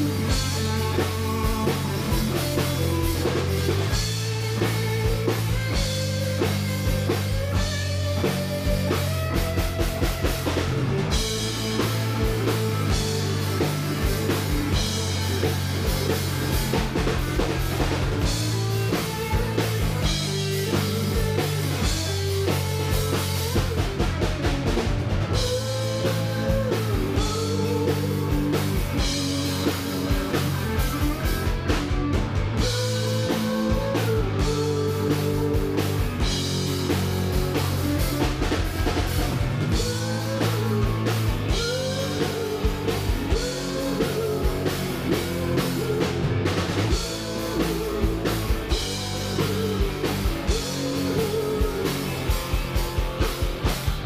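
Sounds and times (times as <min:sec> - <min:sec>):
drum kit: 0:00.0 - 0:54.0
electric guitars: 0:00.0 - 0:54.0
low bass notes: 0:00.0 - 0:54.0.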